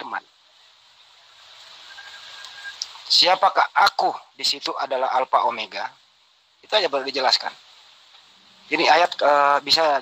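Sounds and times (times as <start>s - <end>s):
faint steady hiss: 0.0s - 10.0s
thin high tone: 1.6s - 3.0s.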